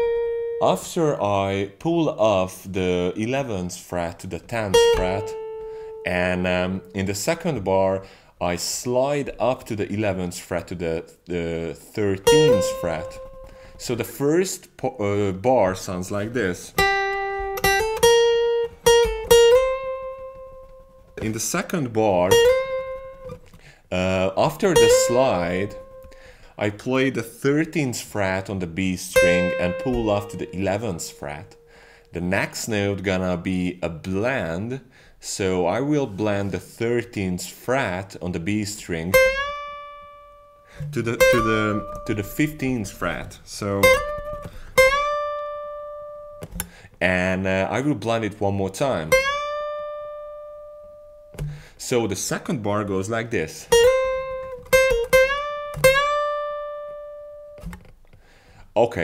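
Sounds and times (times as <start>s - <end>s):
acoustic guitar picked notes: 0.0s - 35.1s, 37.8s - 51.8s, 52.4s - 58.6s.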